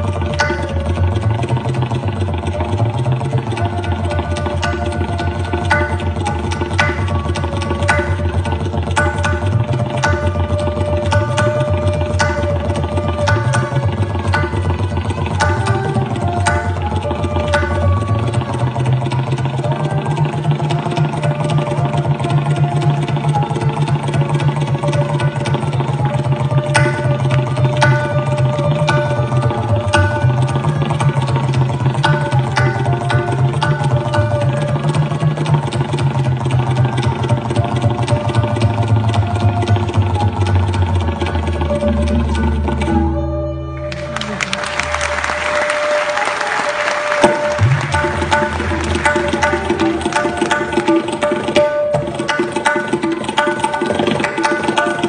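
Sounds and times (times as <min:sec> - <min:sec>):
sustained sarangi melody: 0:00.0 - 0:55.0
tabla drumming: 0:00.0 - 0:55.0
deep bass drum ringing: 0:47.6 - 0:49.5.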